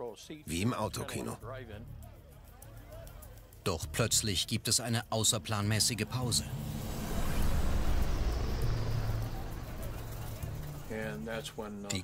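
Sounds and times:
machine rumble and hum: 0:05.8 - 0:11.8.

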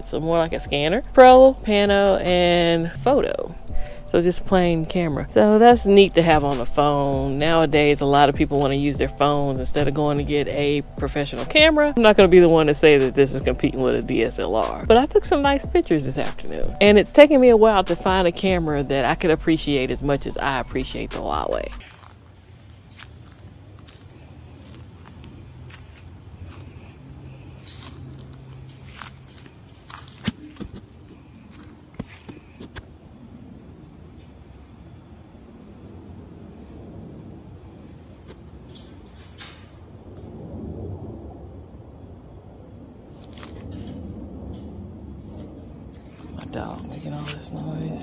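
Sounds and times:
steady low rumble: 0:00.0 - 0:48.0.

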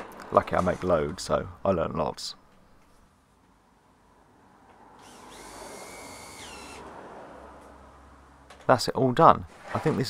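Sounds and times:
cordless drill motor whining: 0:05.0 - 0:06.9.

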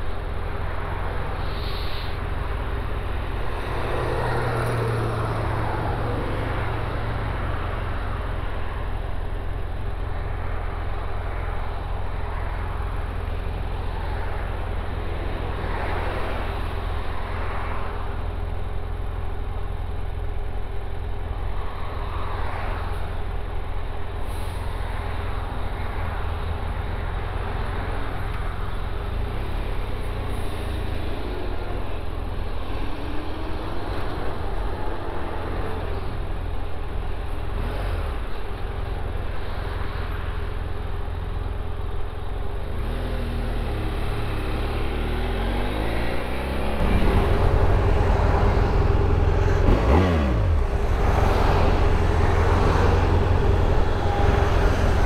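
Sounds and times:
surrounding traffic: 0:00.0 - 0:55.0
motorcycle engine revving: 0:42.8 - 0:55.0.

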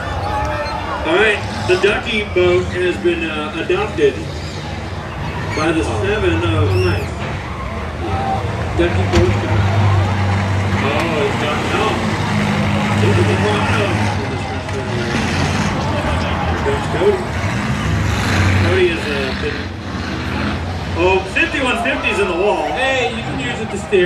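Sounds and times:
people talking: 0:00.0 - 0:04.3, 0:05.5 - 0:07.1, 0:08.1 - 0:09.9, 0:10.7 - 0:17.4, 0:18.5 - 0:19.6, 0:21.0 - 0:24.0
race car engines droning: 0:00.0 - 0:24.0.

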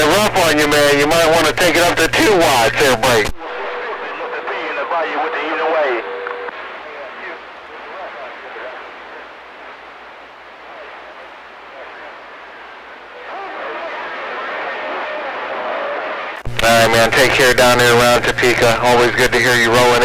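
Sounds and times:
muffled radio voice: 0:00.0 - 0:09.3, 0:10.6 - 0:12.4, 0:13.2 - 0:20.0
static hiss: 0:00.0 - 0:20.0.

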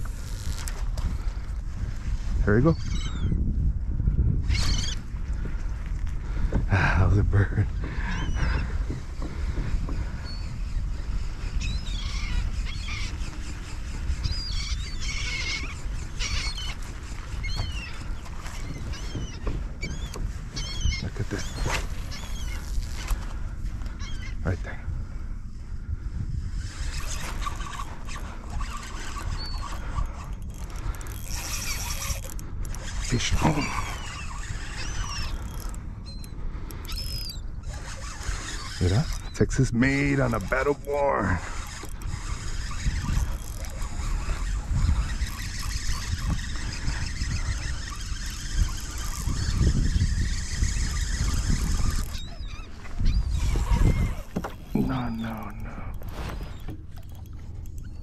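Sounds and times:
fishing reel drag buzzing: 0:00.0 - 0:03.4, 0:04.5 - 0:05.2, 0:07.7 - 0:24.4, 0:26.3 - 0:58.0
wind buffeting microphone: 0:00.0 - 0:58.0
birds calling: 0:02.4 - 0:03.5, 0:04.4 - 0:25.0, 0:26.8 - 0:58.0.

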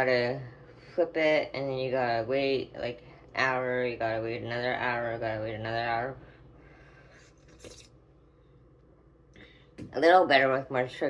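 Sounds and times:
low room hum: 0:00.0 - 0:11.0
person sipping coffee: 0:07.2 - 0:08.0.

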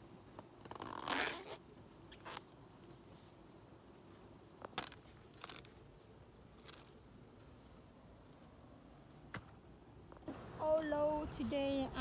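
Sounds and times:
husks and leaves crackling: 0:00.4 - 0:09.6.

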